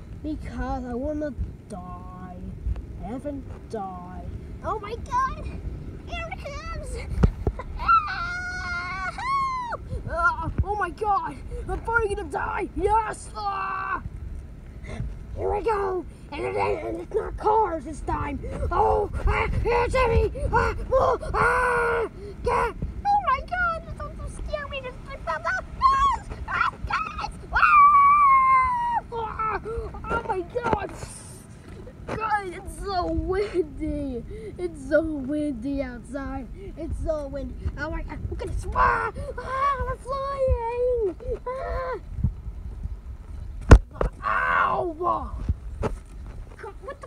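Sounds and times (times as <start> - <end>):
wind rumble on microphone: 0.0 - 47.0
cartoonish voices yelping: 25.4 - 30.3.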